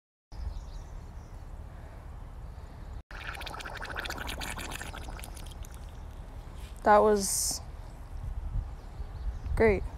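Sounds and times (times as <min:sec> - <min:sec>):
pig farting in water: 0:03.1 - 0:05.9.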